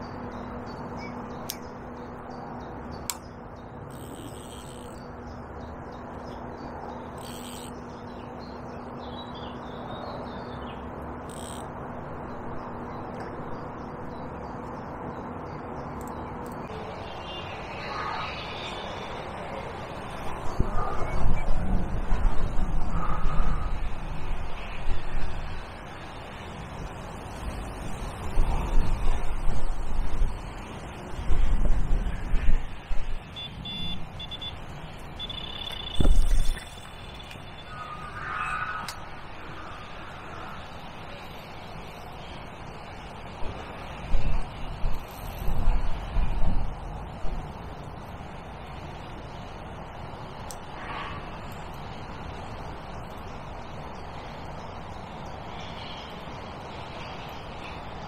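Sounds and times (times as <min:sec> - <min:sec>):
wind rumbling on microphone: 0:00.0 - 0:35.3, 0:35.9 - 0:58.0
electronic bite alarm beeping: 0:03.9 - 0:05.0, 0:07.2 - 0:07.7, 0:11.3 - 0:11.7, 0:33.4 - 0:34.6, 0:35.2 - 0:37.4.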